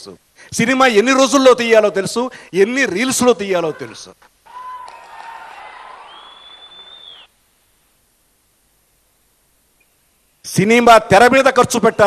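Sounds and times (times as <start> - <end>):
high steady whistling tone: 6.0 - 7.4.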